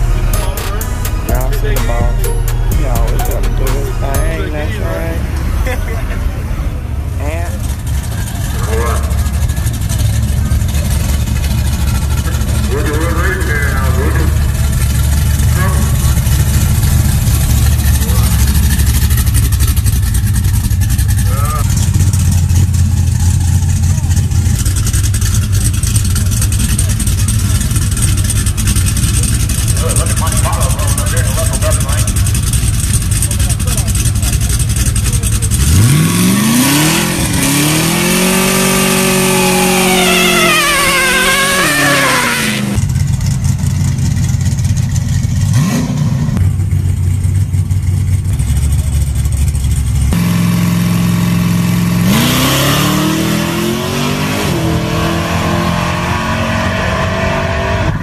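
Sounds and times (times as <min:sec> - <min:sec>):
car engine revving hard: 0:32.2 - 0:42.9, 0:45.4 - 0:46.4, 0:50.1 - 0:58.0.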